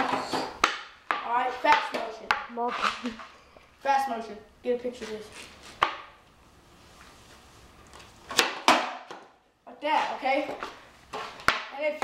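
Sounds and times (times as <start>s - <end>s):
skateboard smacking concrete: 8.3s - 9.3s.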